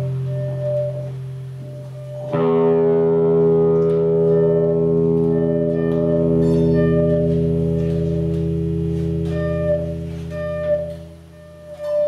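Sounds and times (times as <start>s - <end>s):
electric guitars droning: 0.0s - 12.0s
guitar note struck sharply: 2.2s - 12.0s.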